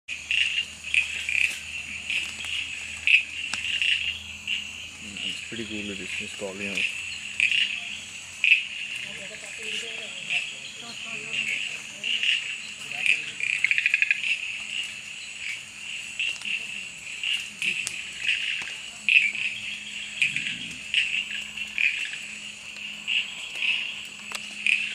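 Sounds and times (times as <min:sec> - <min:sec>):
chorus of frogs calling: 0:00.1 - 0:24.9
frog calling high-pitched notes: 0:00.2 - 0:15.5.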